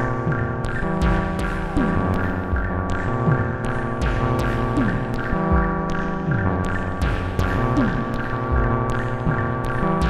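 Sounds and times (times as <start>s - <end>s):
throbbing synthesizer drone: 0.0s - 10.0s.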